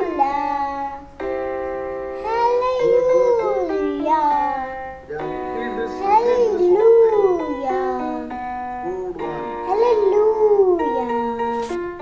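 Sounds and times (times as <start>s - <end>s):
child singing a wavering note: 0.0s - 1.0s, 2.2s - 4.8s, 5.9s - 11.5s
instrumental backing music: 0.0s - 12.0s.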